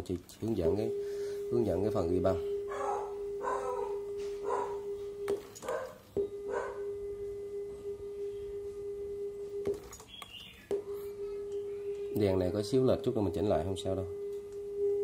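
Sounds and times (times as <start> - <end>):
steady test tone: 0.0 - 15.0.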